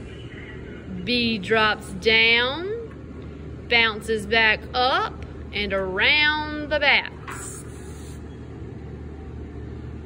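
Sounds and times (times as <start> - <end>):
low background rumble and hum: 0.0 - 10.0.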